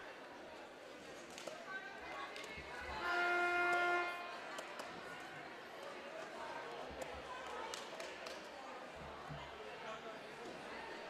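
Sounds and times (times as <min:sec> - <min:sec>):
crowd chatter echoing: 0:00.0 - 0:11.0.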